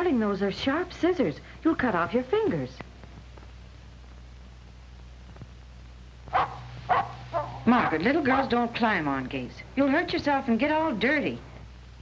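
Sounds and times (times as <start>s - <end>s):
low film soundtrack hum: 0.0s - 12.0s
dog barking: 6.3s - 8.5s.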